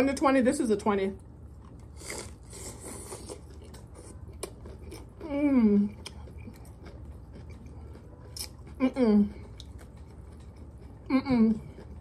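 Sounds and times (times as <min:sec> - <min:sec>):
chewing with crunching: 0:01.2 - 0:12.0.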